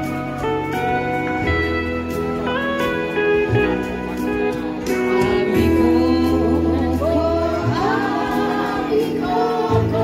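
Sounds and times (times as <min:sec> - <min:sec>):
electronic keyboard: 0:00.0 - 0:10.0
men and women singing together: 0:05.2 - 0:10.0.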